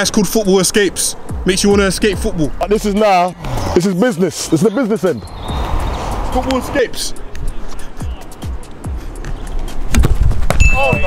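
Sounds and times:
football kick thump: 0:09.9 - 0:10.6
high ringing tone: 0:10.6 - 0:11.0.

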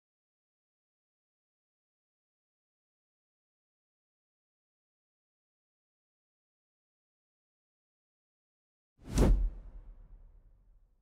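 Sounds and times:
deep whoosh: 0:09.1 - 0:10.5.

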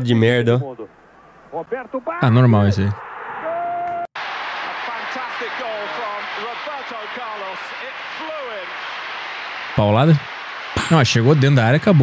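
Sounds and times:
commentator speaking: 0:01.6 - 0:03.0, 0:09.8 - 0:10.2, 0:10.8 - 0:12.0
stadium crowd noise: 0:02.9 - 0:12.0.

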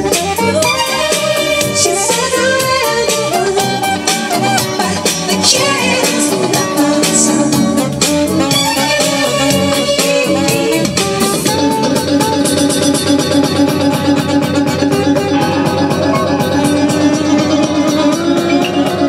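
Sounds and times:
dance-band music: 0:00.0 - 0:19.0
fast strummed guitar rhythm: 0:00.0 - 0:19.0.

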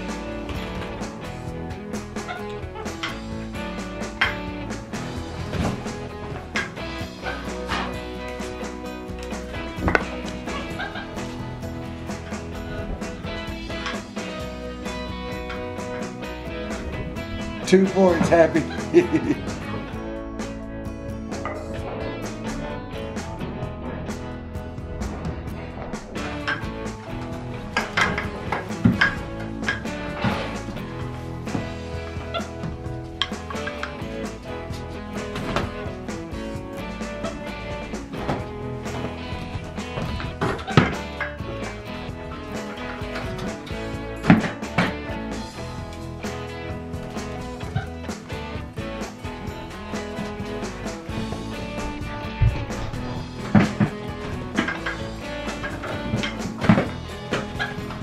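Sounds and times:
background music with steady beat: 0:00.0 - 0:58.0.

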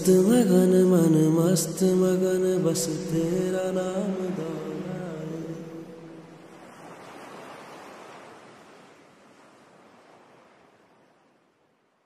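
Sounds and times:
ocean surf rushing: 0:02.8 - 0:10.7.

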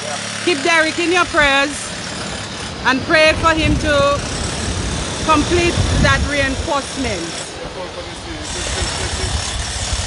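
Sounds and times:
waves breaking on stony beach: 0:01.8 - 0:10.0.

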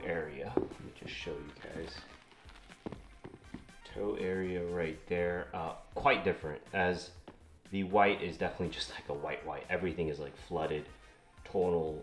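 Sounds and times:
sneaker soles knocking on wood floor: 0:00.5 - 0:01.3, 0:02.7 - 0:03.8, 0:07.2 - 0:07.5.

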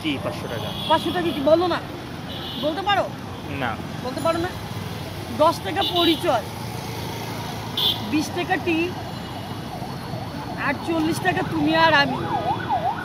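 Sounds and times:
voices talking: 0:00.0 - 0:12.5
low rumble of road traffic: 0:00.0 - 0:13.0.

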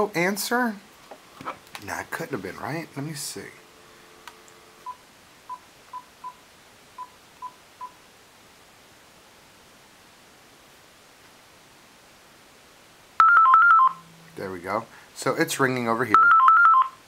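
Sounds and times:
faint background hiss: 0:00.0 - 0:17.0
phone keypad beeps: 0:13.2 - 0:14.0, 0:16.2 - 0:17.0.

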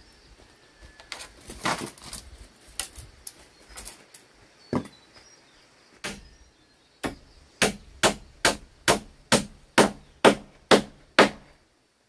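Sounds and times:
hammer striking nail into wood: 0:07.0 - 0:11.5.

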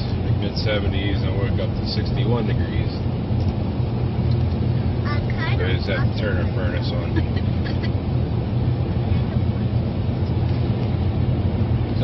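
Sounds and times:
car engine and road rumble: 0:00.0 - 0:12.0.

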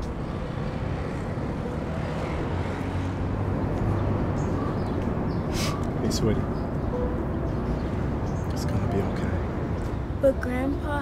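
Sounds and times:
low rumble of traffic: 0:00.0 - 0:11.0.

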